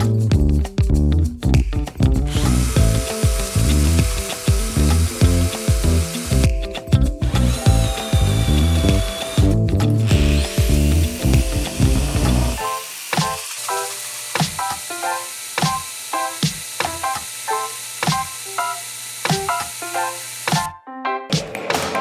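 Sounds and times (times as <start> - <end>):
background music with beat: 0.0 - 12.6, 20.6 - 22.0
power drill cutting steel: 2.3 - 20.7.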